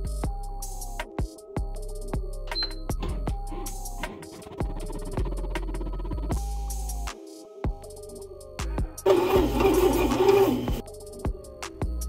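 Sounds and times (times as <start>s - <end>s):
background music with steady beat: 0.0s - 12.0s
bread machine motor whirring: 9.0s - 10.8s.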